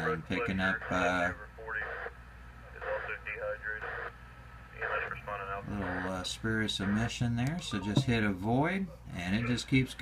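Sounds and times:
voice-like radio audio: 0:00.0 - 0:04.1, 0:04.8 - 0:06.2
steady low hum: 0:00.0 - 0:10.0.

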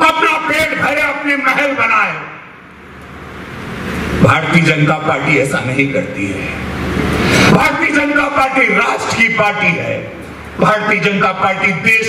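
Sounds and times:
man speaking over public address: 0:00.0 - 0:02.6, 0:04.2 - 0:06.7, 0:07.5 - 0:12.0
background hiss and murmur: 0:00.0 - 0:12.0.

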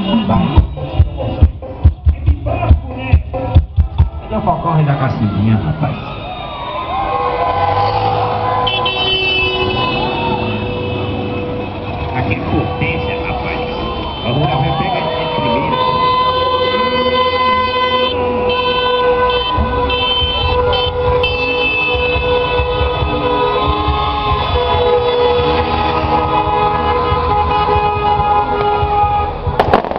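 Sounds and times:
car horns honking: 0:00.0 - 0:03.6, 0:07.8 - 0:29.9
idling engines rumble: 0:07.4 - 0:29.9.

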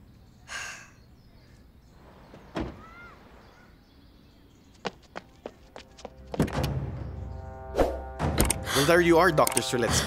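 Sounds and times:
car door shutting: 0:02.3 - 0:03.1
background music: 0:05.3 - 0:10.0.

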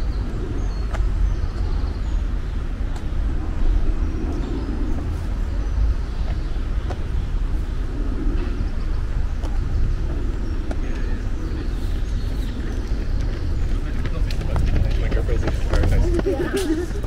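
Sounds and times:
distant road traffic rumble: 0:00.0 - 0:17.0.

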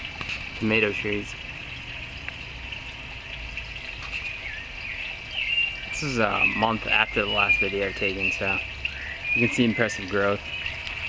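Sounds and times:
bird chirps: 0:04.1 - 0:11.0.

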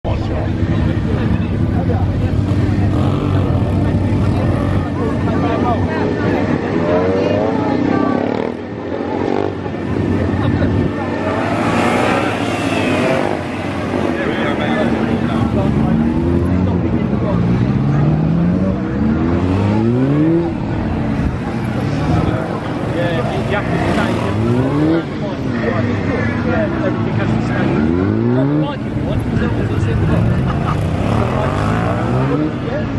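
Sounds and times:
motorcycle engine revving: 0:00.6 - 0:05.7, 0:06.4 - 0:32.9.

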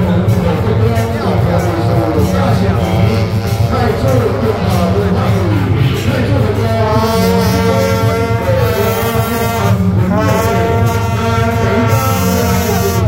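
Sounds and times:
horn-like held notes: 0:00.0 - 0:13.0
loud procession music: 0:00.0 - 0:13.0
low rhythm: 0:00.0 - 0:13.0.

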